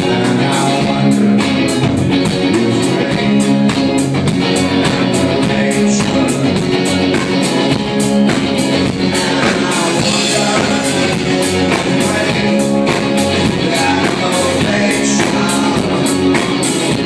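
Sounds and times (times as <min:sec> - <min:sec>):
drum kit beat: 0:00.0 - 0:17.0
electric guitar strummed: 0:00.0 - 0:17.0.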